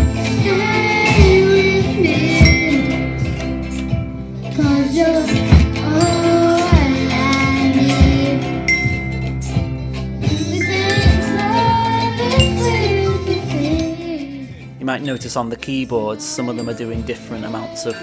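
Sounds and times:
children singing: 0.0s - 3.1s, 4.5s - 9.0s, 10.2s - 14.5s
ukuleles playing: 0.0s - 15.5s
keyboards: 0.0s - 18.0s
glockenspiel: 2.2s - 4.7s, 5.8s - 7.6s, 8.6s - 13.4s, 14.9s - 18.0s.

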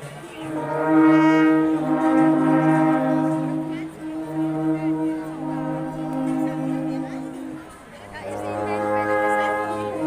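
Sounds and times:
alphorns playing long notes: 0.4s - 10.0s.

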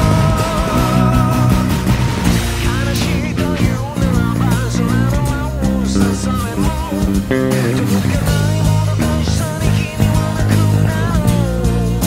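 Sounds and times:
electric bass played with fingers: 0.0s - 12.0s
rock band: 0.0s - 12.0s.

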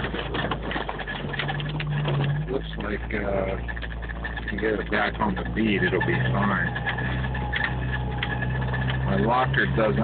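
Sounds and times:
engine running from inside cab: 0.0s - 10.0s.

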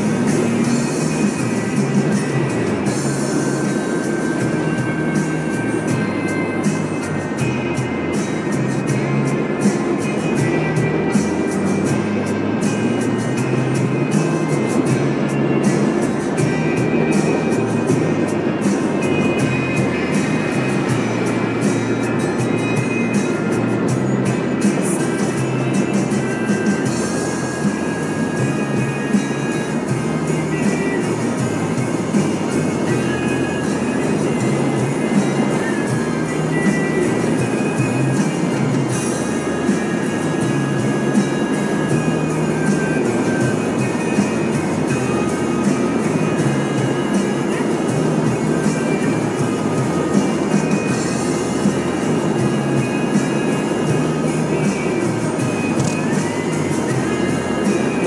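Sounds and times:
music from car stereo: 0.0s - 58.0s
road and tyre noise: 0.0s - 58.0s.

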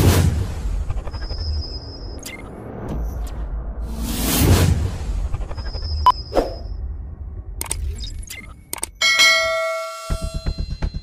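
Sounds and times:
bright bell ding: 9.0s - 11.0s.

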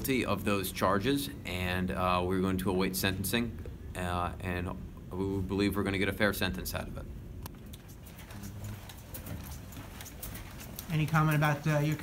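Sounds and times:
footsteps on hard floor: 7.8s - 12.0s.

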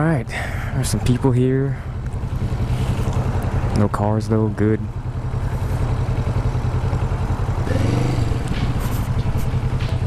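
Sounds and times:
motorcycle engine low rumble: 0.0s - 10.0s.

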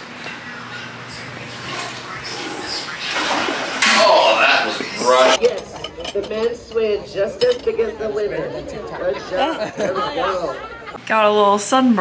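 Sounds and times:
indistinct chatter of voices: 0.0s - 11.1s.

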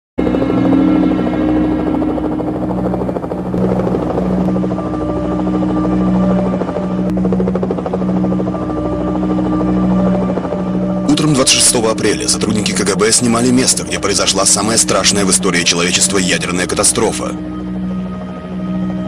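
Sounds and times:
helicopter droning overhead: 0.2s - 19.0s.

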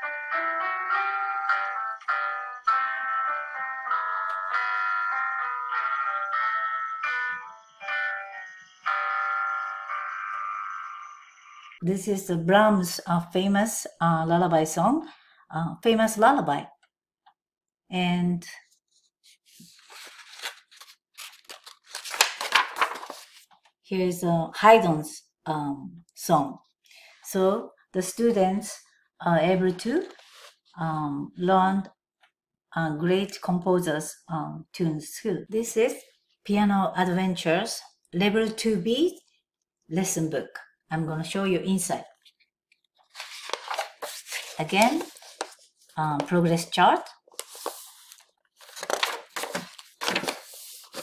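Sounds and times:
paper pages turning: 18.9s - 23.7s, 30.0s - 30.7s, 42.2s - 46.3s, 47.2s - 51.0s.

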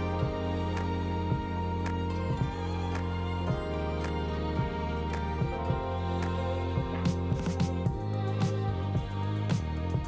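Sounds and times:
slow sustained chords: 0.0s - 10.0s.

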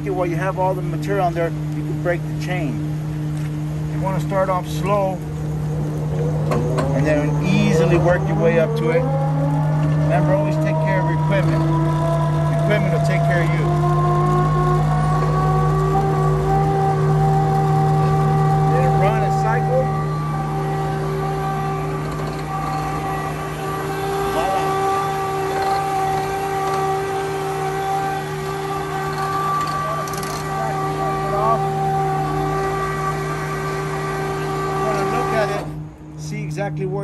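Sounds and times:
hydraulic conveyor belt whine: 0.0s - 37.0s.

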